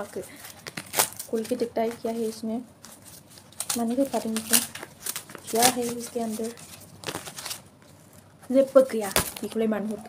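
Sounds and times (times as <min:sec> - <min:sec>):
woman speaking: 0:00.0 - 0:00.4, 0:01.3 - 0:02.7, 0:03.7 - 0:04.8, 0:05.4 - 0:06.6, 0:08.5 - 0:10.0
cardboard rustling and crinkling: 0:00.0 - 0:10.0.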